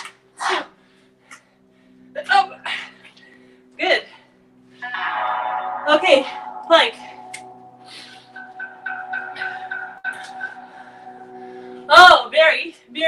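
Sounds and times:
background music with drone: 0.0s - 13.0s
woman breathing forcefully: 9.6s - 11.9s.

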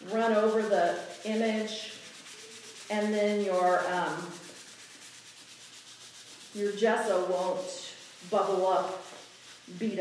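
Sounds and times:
sandpaper rubbing on paper: 0.0s - 10.0s.

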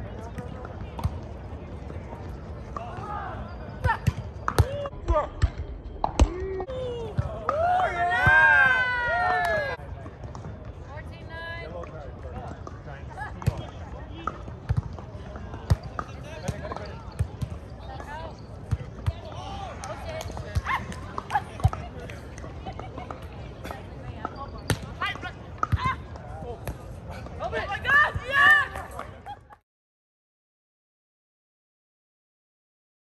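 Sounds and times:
players shouting: 2.8s - 9.8s, 27.1s - 29.0s.

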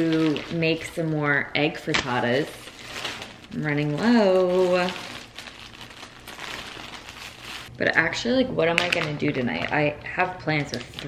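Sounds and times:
plastic bag crinkling: 0.0s - 7.7s, 8.6s - 9.8s.

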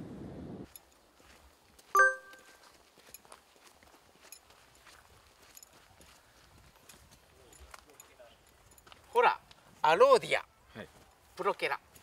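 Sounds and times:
footsteps on dirt trail: 0.7s - 10.0s, 10.8s - 12.0s.

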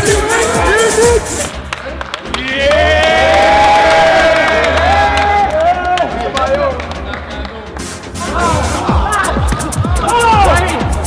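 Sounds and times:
people clapping: 1.3s - 8.0s
men cheering: 2.3s - 6.4s, 8.3s - 10.8s.

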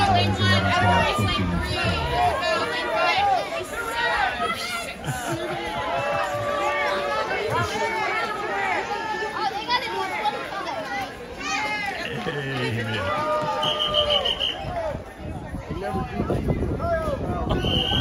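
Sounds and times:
crowd talking and cheering: 0.0s - 18.0s.

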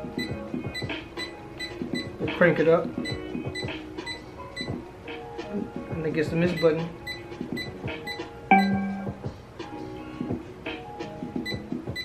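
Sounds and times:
instrumental music from small speaker: 0.0s - 12.0s.

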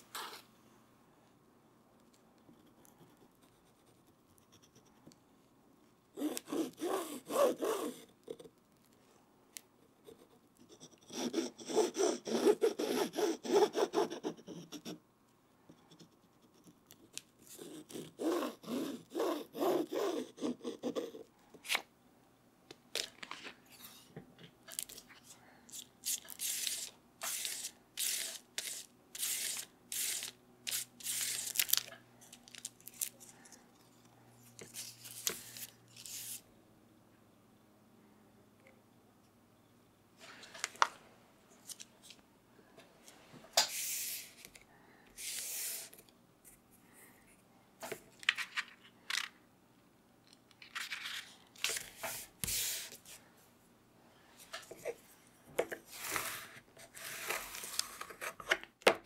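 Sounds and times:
paper and board scratching: 10.0s - 15.0s, 26.1s - 31.6s
paper rubbing on book spine: 26.4s - 31.8s.

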